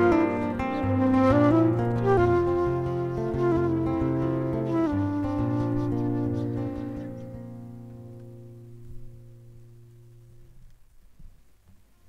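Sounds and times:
flute guitar and accordion chord: 0:00.0 - 0:07.6.

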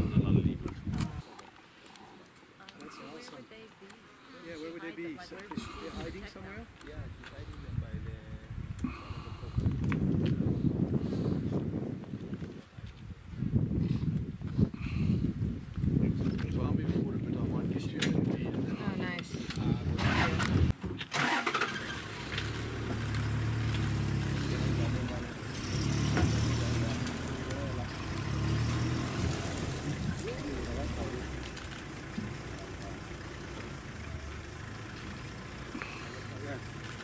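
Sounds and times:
vehicle engine starting and running: 0:19.9 - 0:37.0.

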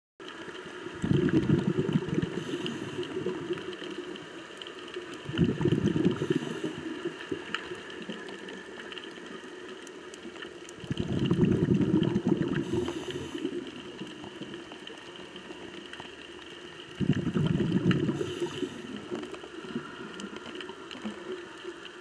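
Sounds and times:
exhaled bubbles rumbling underwater: 0:00.2 - 0:22.0
steady low underwater background: 0:00.2 - 0:22.0
faint clicks: 0:01.8 - 0:05.2, 0:06.0 - 0:11.0, 0:12.5 - 0:22.0.

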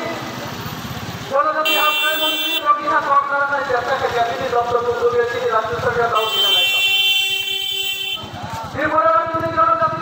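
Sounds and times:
vehicle horn steady tone: 0:01.6 - 0:02.7, 0:06.2 - 0:08.4.

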